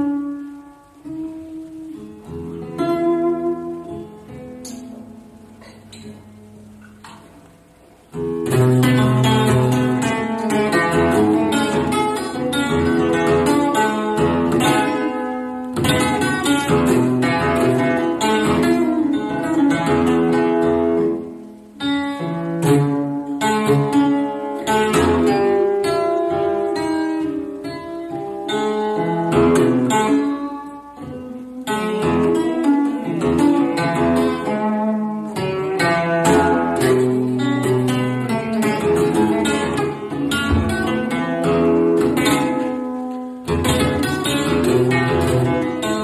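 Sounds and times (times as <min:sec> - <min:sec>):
acoustic guitar played fast: 0:00.0 - 0:46.0.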